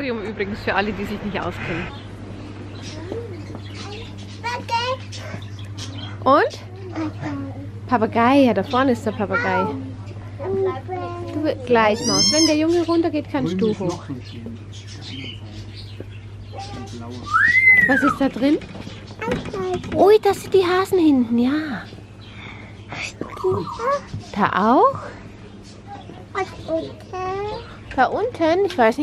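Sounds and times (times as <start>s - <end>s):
caged birds calling: 0.0s - 29.0s
steady low hum: 0.0s - 29.0s
rising and falling whistle: 17.3s - 18.1s.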